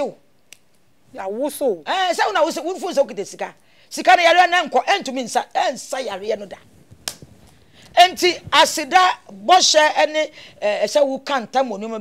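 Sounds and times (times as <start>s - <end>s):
woman speaking: 8.0s - 12.0s.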